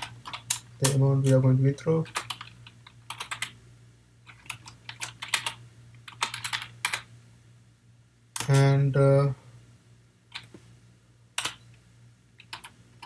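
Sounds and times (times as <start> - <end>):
computer keyboard typing: 0.0 - 1.4, 2.1 - 3.6, 4.2 - 7.1, 11.4 - 11.6, 12.4 - 12.8.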